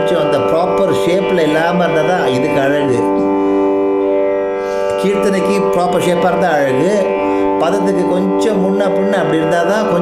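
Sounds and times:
tanpura drone: 0.0s - 10.0s.

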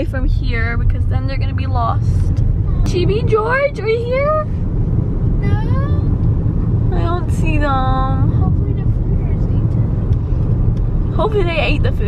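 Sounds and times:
car cabin engine and road rumble: 0.0s - 12.0s.

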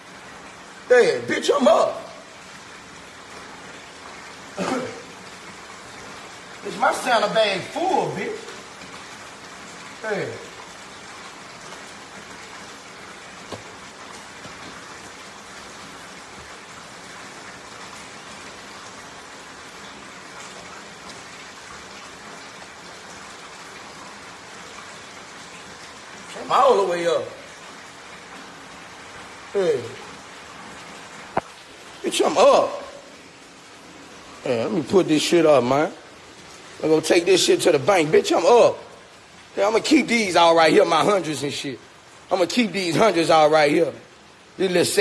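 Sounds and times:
room noise hiss: 0.0s - 45.0s.

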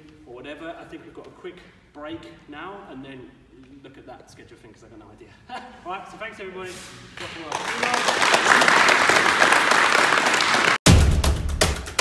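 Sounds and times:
group applauding: 7.2s - 10.8s
music with heavy drum hits: 10.8s - 12.0s.

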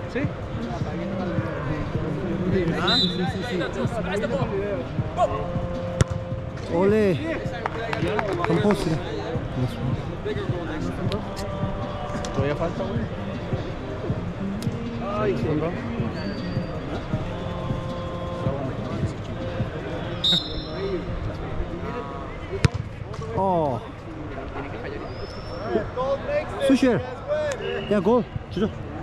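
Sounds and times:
echoing background voices: 0.0s - 25.2s
football kicks and bounces on turf: 6.0s - 6.7s, 22.6s - 23.4s.

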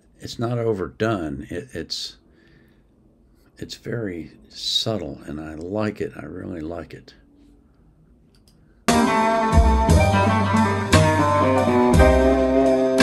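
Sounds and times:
drums: 8.9s - 13.0s
electric guitar: 8.9s - 13.0s.

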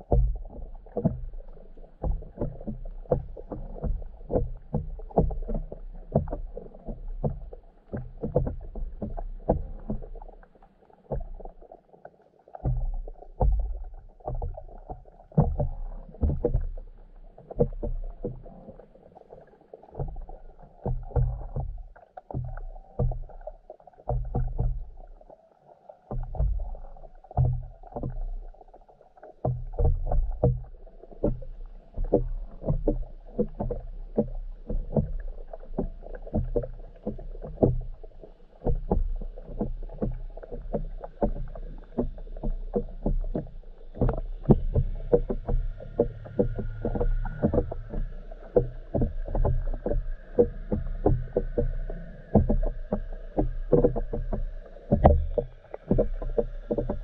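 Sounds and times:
muffled underwater thumps: 0.0s - 11.9s, 12.5s - 25.3s, 26.0s - 57.0s.

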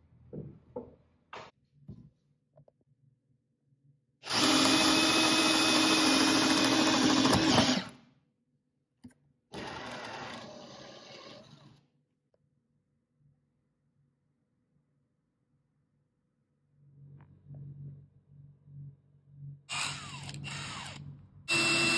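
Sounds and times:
cordless drill boring into wood: 4.2s - 8.0s, 19.7s - 21.9s.

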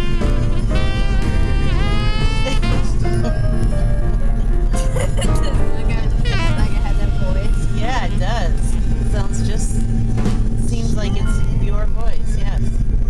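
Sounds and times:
car driving rumble: 0.0s - 13.0s
christmas song on car radio: 2.4s - 9.8s.

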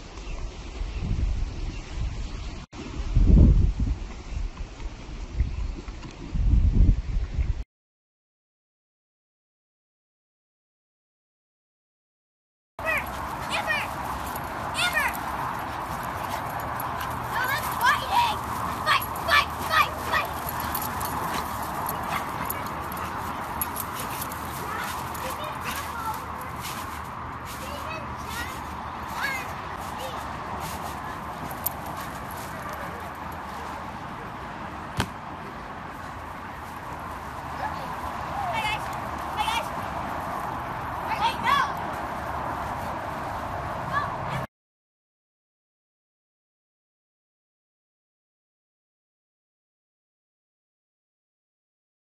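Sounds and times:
dogs barking and yipping: 12.8s - 33.8s
background murmur: 12.8s - 44.5s.

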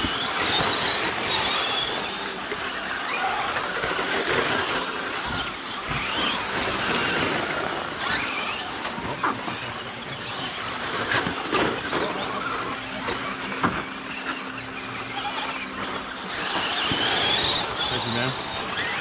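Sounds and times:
rc truck electric motors whining: 0.0s - 19.0s
tyres on dirt: 0.0s - 19.0s.

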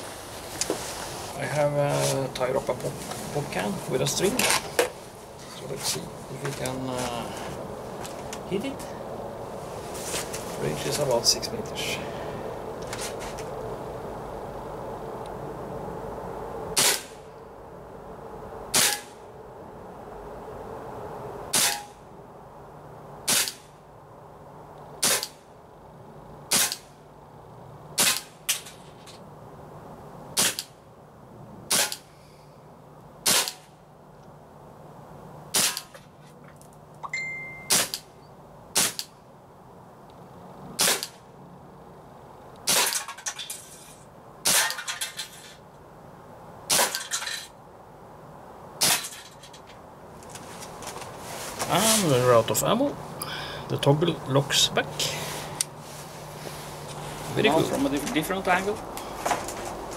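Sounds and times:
air pistol shots: 16.8s - 17.2s, 18.7s - 19.2s, 21.5s - 22.0s, 23.3s - 23.7s, 25.0s - 25.4s, 26.5s - 26.9s, 28.0s - 28.4s, 30.4s - 30.7s, 31.7s - 32.1s, 33.2s - 33.7s, 35.5s - 35.9s, 37.7s - 38.0s, 38.7s - 39.1s, 40.8s - 41.2s, 42.6s - 43.0s, 46.7s - 47.0s.

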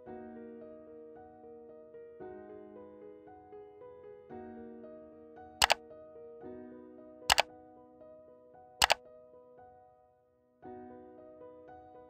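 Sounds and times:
soft piano music: 0.0s - 12.0s.

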